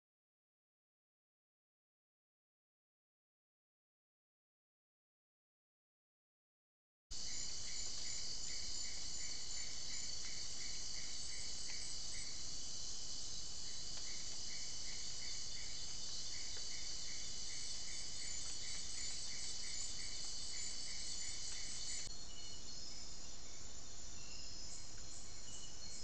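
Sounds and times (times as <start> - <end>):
insect chirping: 7.1 - 26.0
insects trilling: 7.1 - 26.0.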